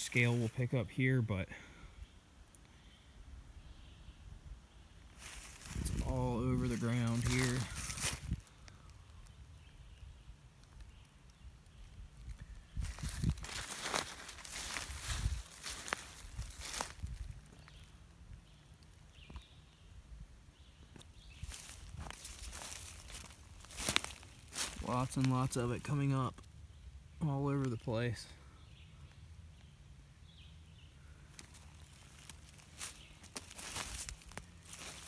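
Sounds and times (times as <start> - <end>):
footsteps crunching dry leaves: 5.2 - 8.9, 12.2 - 17.9, 21.2 - 26.0, 31.2 - 35.0.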